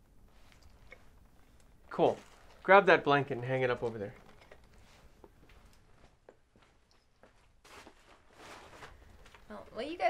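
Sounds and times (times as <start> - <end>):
cloth blanket rustling: 7.3 - 9.4.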